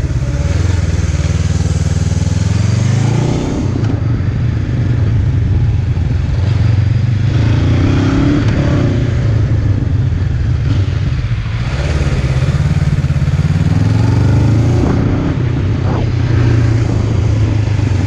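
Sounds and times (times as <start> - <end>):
motorcycle engine running: 0.0 - 18.0.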